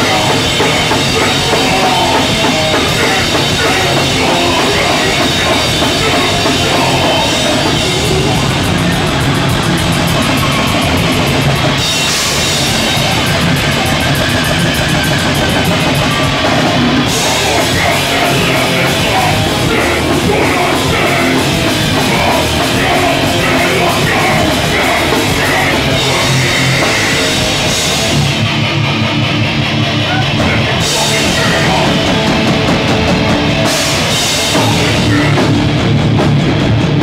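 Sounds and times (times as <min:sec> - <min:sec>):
rock band playing: 0:00.0 - 0:37.0.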